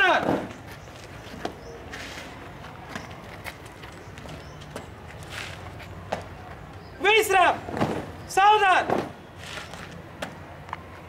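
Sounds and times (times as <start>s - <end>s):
shoe footsteps on hard ground: 0.2s - 6.9s.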